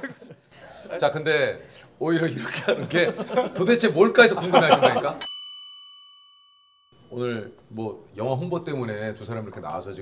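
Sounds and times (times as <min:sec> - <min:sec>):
bright bell ding: 0:05.2 - 0:07.6.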